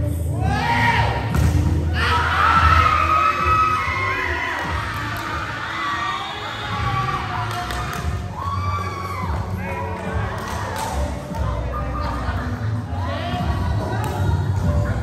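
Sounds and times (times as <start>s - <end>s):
background music: 0.0s - 15.0s
players shouting and cheering: 0.2s - 15.0s.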